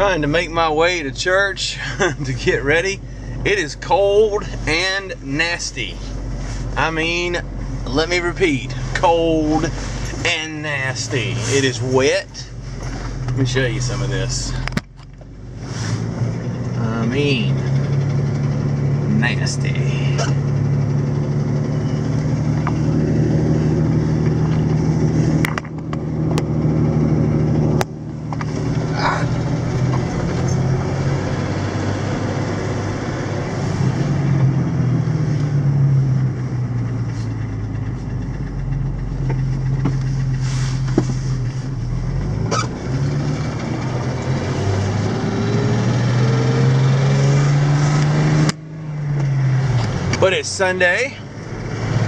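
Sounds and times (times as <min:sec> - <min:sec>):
car engine while driving: 0:00.0 - 0:52.0.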